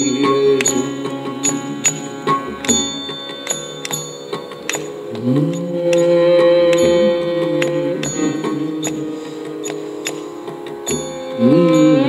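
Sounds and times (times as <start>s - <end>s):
ghatam strokes: 0.0s - 12.0s
mridangam strokes: 0.0s - 12.0s
sustained violin tones: 0.0s - 12.0s.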